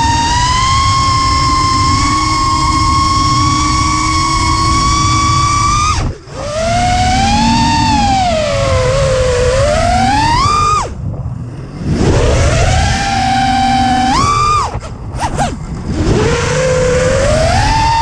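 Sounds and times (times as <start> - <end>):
drone motors whining: 0.0 - 18.0
rush of wind: 0.0 - 18.0.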